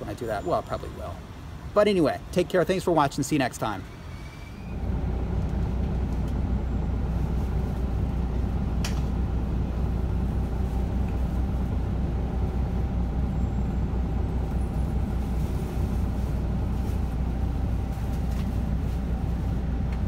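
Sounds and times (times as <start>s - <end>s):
vehicle rumble from inside cabin: 4.5s - 20.0s.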